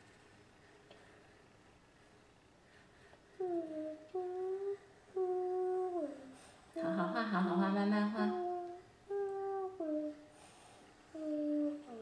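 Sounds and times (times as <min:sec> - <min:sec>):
single voice humming: 0:03.4 - 0:07.1, 0:08.1 - 0:10.3, 0:11.1 - 0:12.0
people humming a tune: 0:03.4 - 0:07.3, 0:08.1 - 0:10.2.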